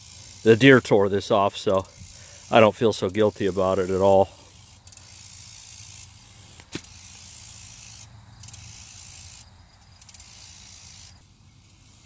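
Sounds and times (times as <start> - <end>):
insect buzzing: 0.0 - 12.0.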